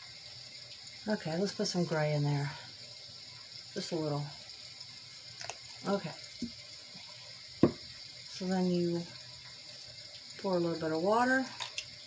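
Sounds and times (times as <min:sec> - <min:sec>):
rain sound from sound machine: 0:00.0 - 0:12.0
object knocking on table: 0:07.6 - 0:07.8.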